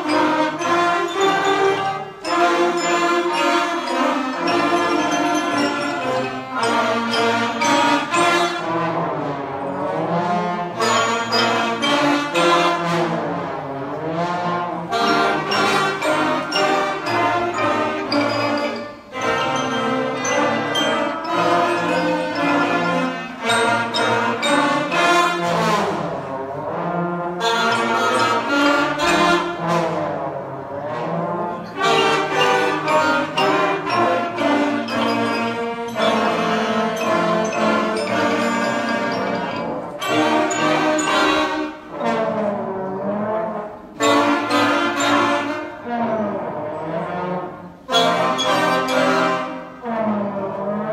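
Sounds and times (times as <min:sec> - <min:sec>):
concert band playing: 0:00.0 - 0:50.9
trombone slide glissandos: 0:00.0 - 0:50.9.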